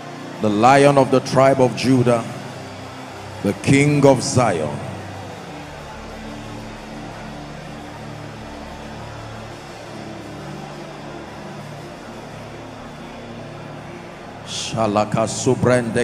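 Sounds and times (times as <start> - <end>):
keyboard pad chords: 0.0 - 16.0.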